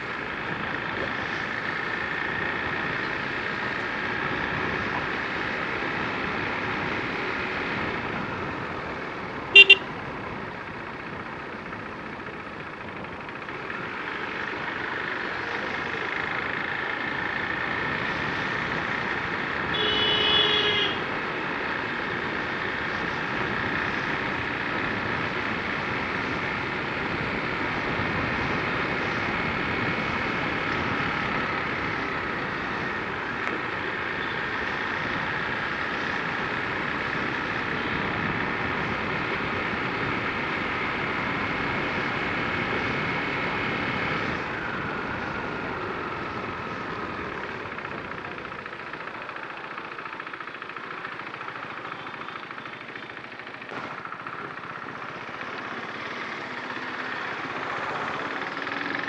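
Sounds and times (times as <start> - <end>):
motorcycle engine: 0.0 - 59.0
road noise: 0.0 - 59.0.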